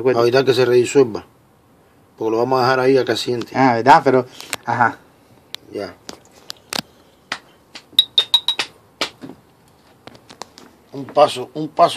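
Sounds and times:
ringing glassy clinks: 8.0 - 8.7
ticking glass beaker on hotplate: 8.0 - 8.7.

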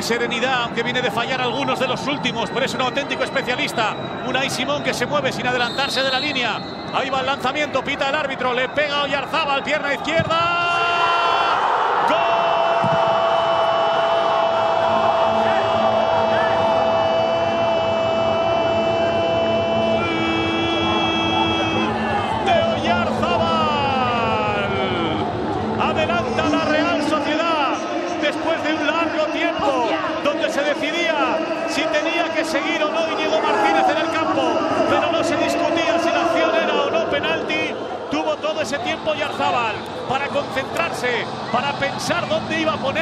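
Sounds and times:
commentator shouting goal: 16.3 - 25.2.

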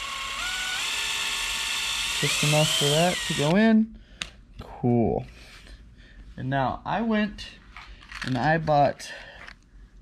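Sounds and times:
cordless drill boring into wood: 0.0 - 3.6.

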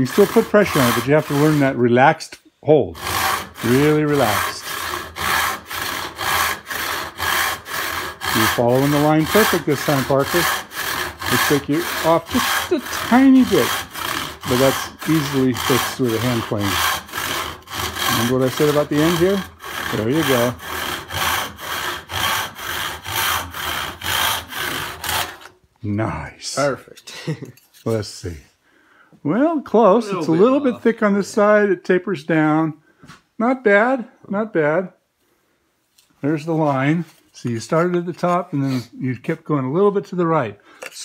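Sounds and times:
handsaw cutting wood: 0.0 - 25.6.

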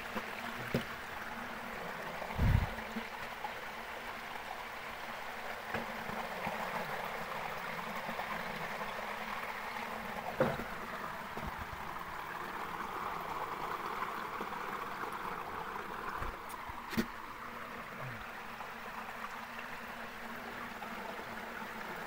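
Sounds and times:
stream water rushing: 0.0 - 22.0.

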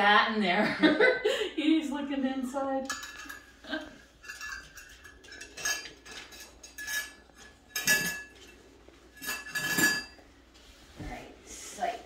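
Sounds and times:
metal spoon clinking against bowl: 2.8 - 3.6, 4.2 - 8.6, 9.2 - 10.2.

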